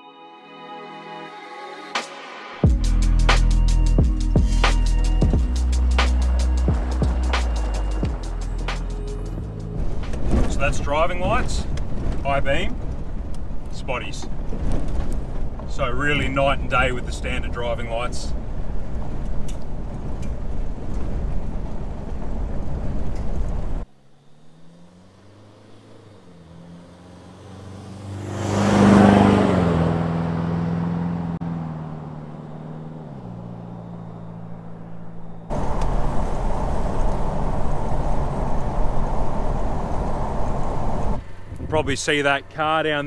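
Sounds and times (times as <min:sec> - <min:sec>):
car cabin road rumble: 0:04.4 - 0:43.0
car passing by: 0:18.2 - 0:43.0.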